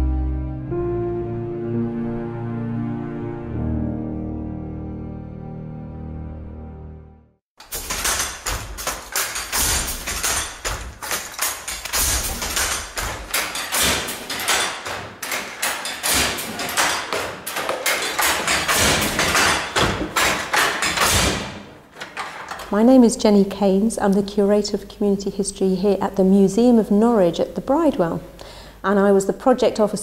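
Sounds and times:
wooden handloom clattering: 7.6 - 22.9.

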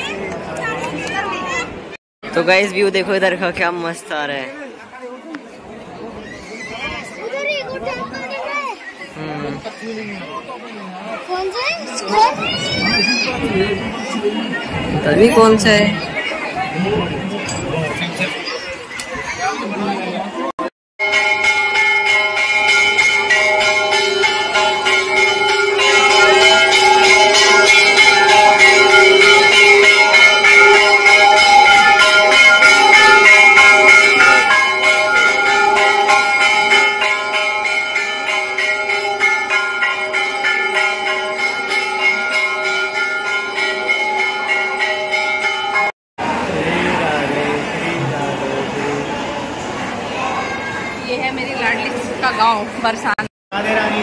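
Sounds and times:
temple bells clanging: 21.0 - 46.7.

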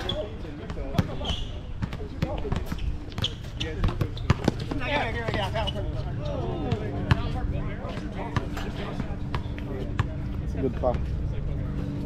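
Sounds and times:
players' voices: 0.0 - 12.0
basketball bouncing on hard court: 0.6 - 5.5, 6.7 - 7.3.

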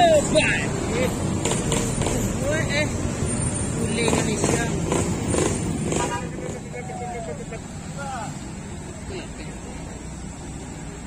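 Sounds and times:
people's voices and calls: 0.0 - 10.9
low engine rumble of traffic: 0.0 - 11.0.

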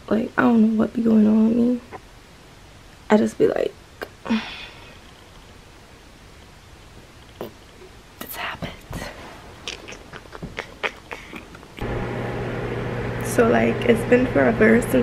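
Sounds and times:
steady low hum: 8.2 - 15.0.

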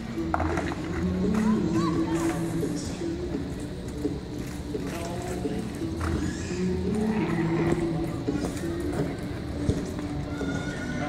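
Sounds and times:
voices: 0.0 - 11.0
horse hoofbeats on dirt: 3.4 - 11.0.

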